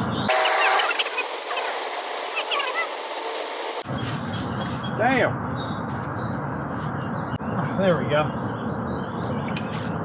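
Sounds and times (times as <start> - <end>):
bird chirps: 3.8 - 10.0.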